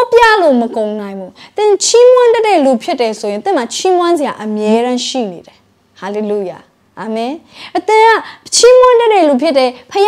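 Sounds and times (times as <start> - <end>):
woman preaching: 0.0 - 10.0.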